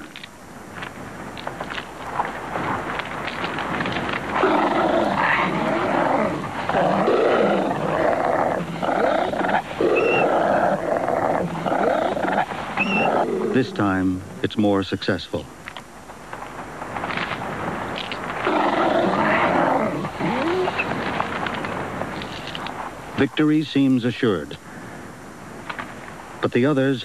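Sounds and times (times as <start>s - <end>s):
coyotes snarling and growling: 3.2s - 14.1s, 18.1s - 21.5s
coyote high yelps: 7.0s - 13.6s.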